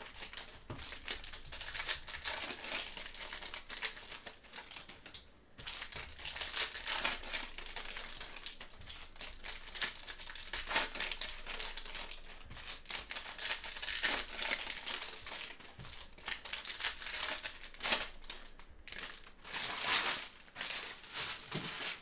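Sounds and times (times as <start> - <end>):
foil wrappers crinkling: 0.0 - 22.0.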